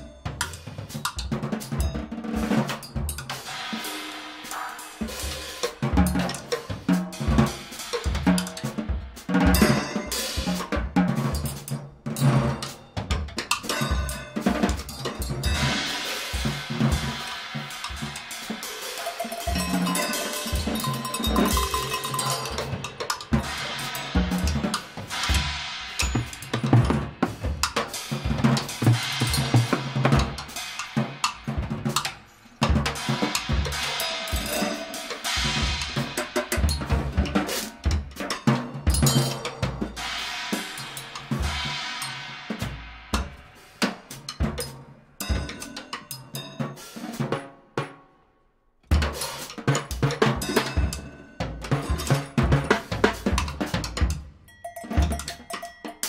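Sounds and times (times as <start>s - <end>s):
drum kit played busily: 0.0s - 48.0s, 48.9s - 56.0s.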